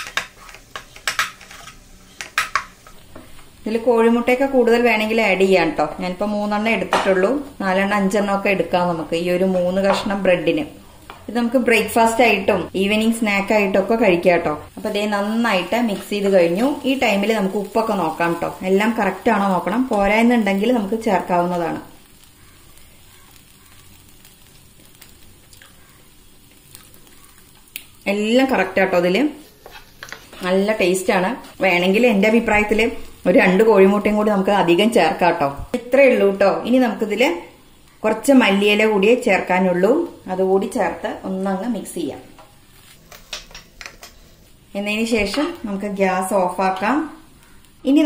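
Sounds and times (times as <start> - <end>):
food sizzling in a frying pan: 0.0 - 48.0.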